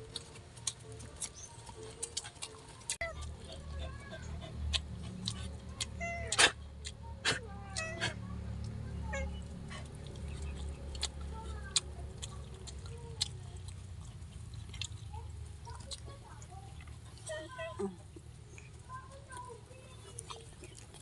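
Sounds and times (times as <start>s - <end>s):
chewing clicks and smacks: 0.0s - 8.8s, 9.4s - 17.4s, 18.0s - 21.0s
cat meowing: 6.0s - 6.6s.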